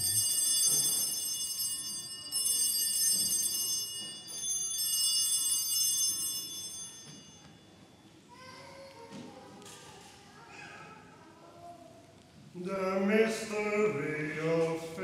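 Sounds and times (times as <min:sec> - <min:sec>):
bright high bells ringing: 0:00.0 - 0:07.9.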